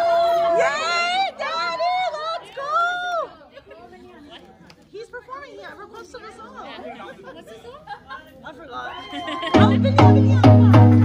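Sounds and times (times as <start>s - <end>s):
guests chattering: 0.0s - 11.0s
dance music with heavy bass beat: 9.6s - 11.0s.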